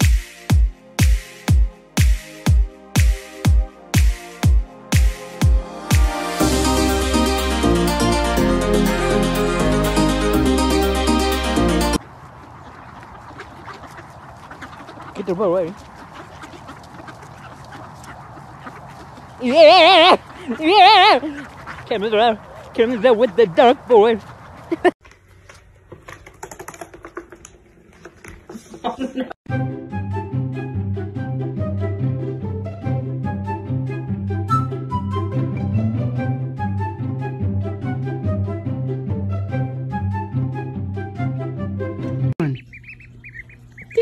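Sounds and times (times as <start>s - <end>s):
music: 0.0s - 12.0s, 29.5s - 42.4s
duckling feet pattering on hardwood: 12.3s - 19.4s, 20.2s - 28.9s.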